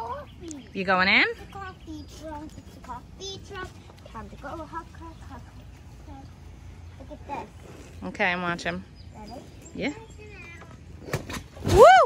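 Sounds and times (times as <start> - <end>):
distant children chattering: 9.0 - 11.0.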